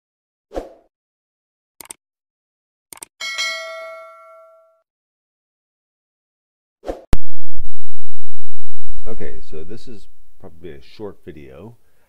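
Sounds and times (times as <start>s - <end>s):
notification bell ding: 3.2s - 4.8s.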